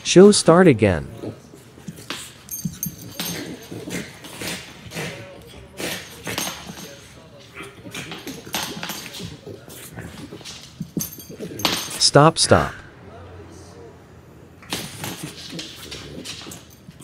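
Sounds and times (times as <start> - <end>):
dogs scuffling: 1.1 - 12.0, 14.6 - 17.0
dogs vocalizing while playing: 1.1 - 12.0, 14.5 - 17.0.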